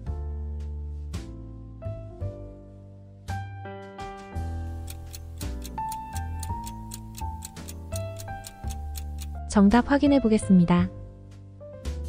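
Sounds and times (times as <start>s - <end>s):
piano background music: 0.0s - 12.0s
timer ticking: 4.6s - 9.4s.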